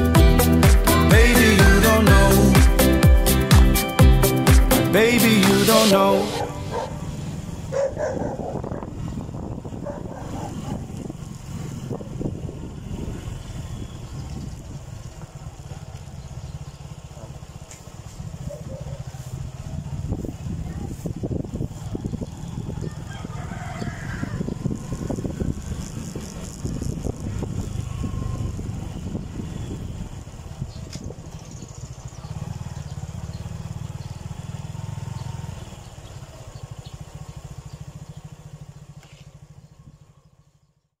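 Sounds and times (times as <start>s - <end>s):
motorcycle engine running: 0.0s - 41.0s
wind on microphone: 6.4s - 15.5s, 18.0s - 32.7s.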